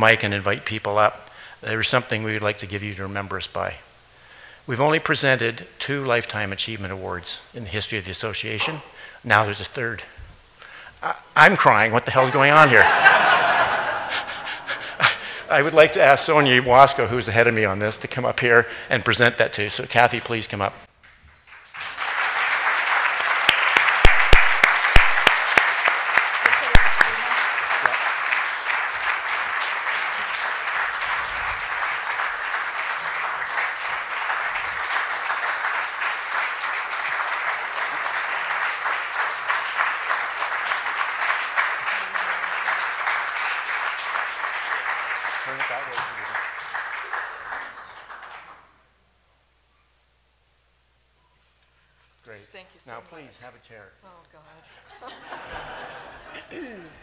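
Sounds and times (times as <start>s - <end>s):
audience applauding: 21.5s - 48.8s.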